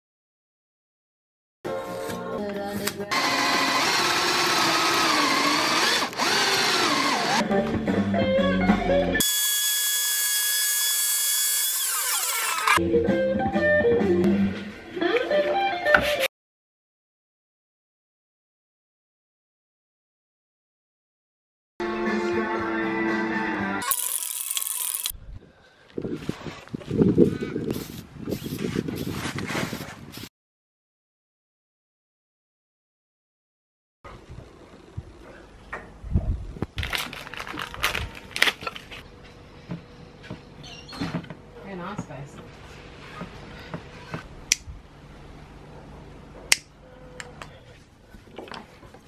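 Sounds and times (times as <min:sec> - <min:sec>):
background music with held chords: 0:07.4 - 0:09.2, 0:12.8 - 0:15.8.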